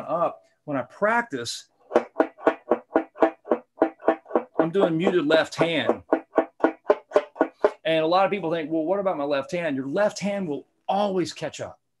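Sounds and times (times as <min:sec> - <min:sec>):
muted banjo picking: 0:01.8 - 0:08.5.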